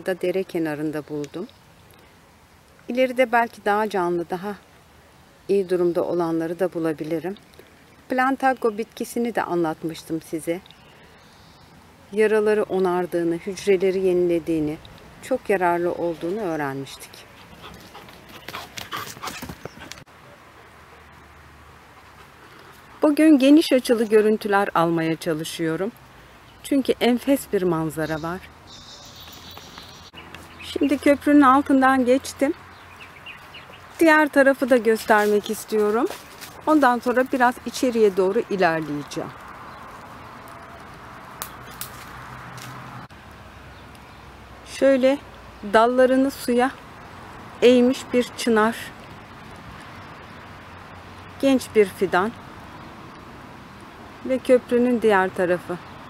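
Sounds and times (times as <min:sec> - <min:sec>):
outdoor background hiss: 0:00.0 - 0:56.0
dog panting: 0:17.2 - 0:20.0.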